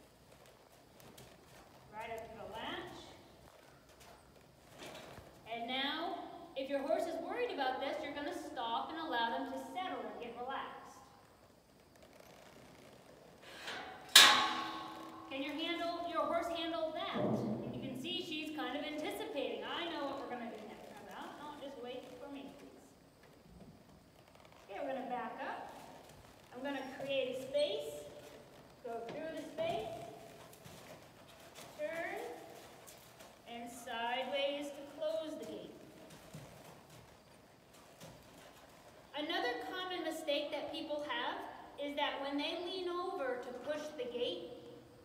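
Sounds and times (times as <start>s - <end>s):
metal gate clanging: 13.5s - 15.5s
woman talking: 15.3s - 22.9s, 24.7s - 25.7s, 26.5s - 28.1s, 28.9s - 30.0s, 31.8s - 32.4s, 33.5s - 35.8s, 39.2s - 44.6s.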